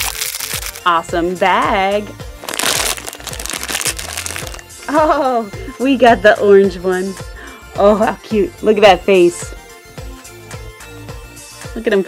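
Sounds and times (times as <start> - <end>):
foil packet crinkling and tearing: 0.0 - 0.9, 2.4 - 4.7
background music: 0.0 - 12.0.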